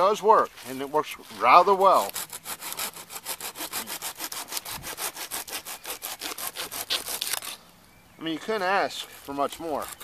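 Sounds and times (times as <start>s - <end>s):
pruning saw cutting branch: 0.6s - 7.7s, 8.5s - 10.0s.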